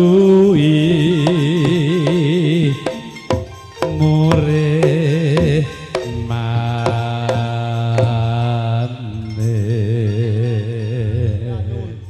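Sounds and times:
gamelan music: 0:00.0 - 0:12.0
person singing with vibrato: 0:00.0 - 0:12.0
sharp drum strokes: 0:01.1 - 0:08.6.

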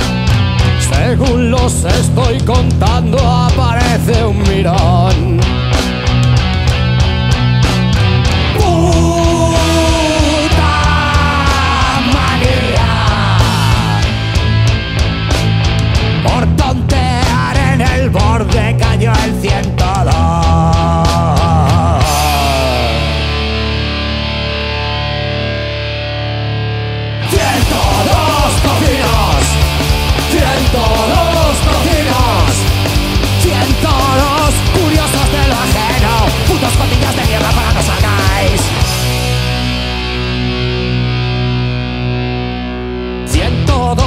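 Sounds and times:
distorted electric guitar chord: 0:21.8 - 0:43.7.

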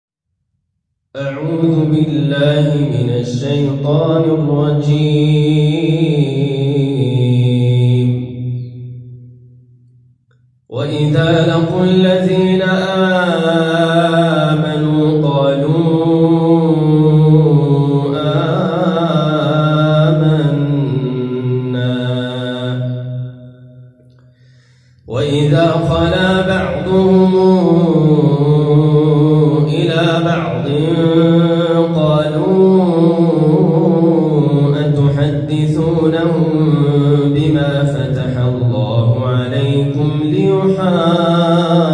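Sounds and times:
man chanting melodically: 0:01.1 - 0:08.9, 0:10.7 - 0:23.8, 0:25.0 - 0:41.9
man reciting in song: 0:01.2 - 0:08.4, 0:10.7 - 0:23.2, 0:25.0 - 0:41.9.

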